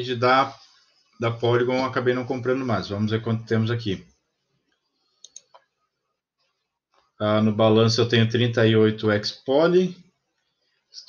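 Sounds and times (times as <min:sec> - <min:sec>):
computer mouse clicks: 0:05.2 - 0:05.7.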